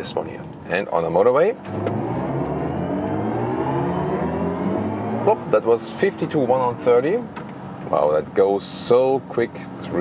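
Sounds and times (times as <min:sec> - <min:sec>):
electric car motor whine rising: 0:01.7 - 0:05.6.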